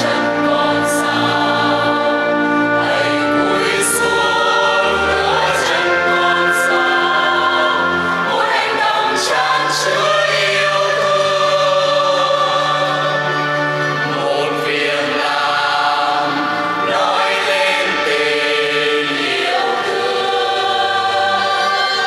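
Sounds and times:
choir singing a slow hymn: 0:00.0 - 0:22.0.

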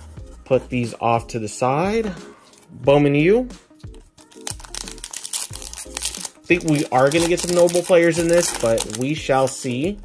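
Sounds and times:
background music: 0:00.0 - 0:10.0
foil pack crinkling as torn open: 0:04.2 - 0:09.6.

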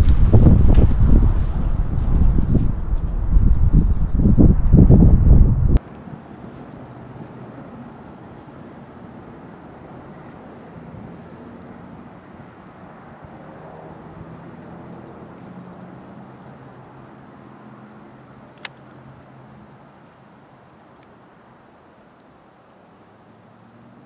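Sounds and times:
weak low hum: 0:00.0 - 0:05.8
wind buffeting microphone: 0:00.0 - 0:17.4.

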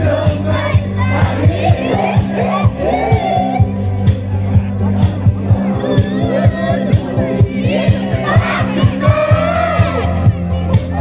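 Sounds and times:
heavy bass line: 0:00.0 - 0:11.0
men shouting and singing: 0:00.0 - 0:11.0
song over pa system: 0:00.0 - 0:11.0
steady drum beat: 0:00.0 - 0:11.0.

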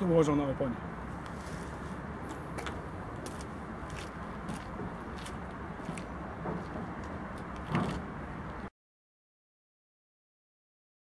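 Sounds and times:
low vehicle rumble: 0:00.8 - 0:08.7.

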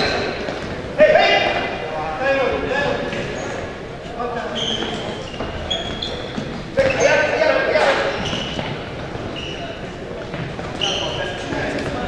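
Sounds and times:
sneakers squeaking on gym floor: 0:00.0 - 0:00.9, 0:02.8 - 0:12.0.

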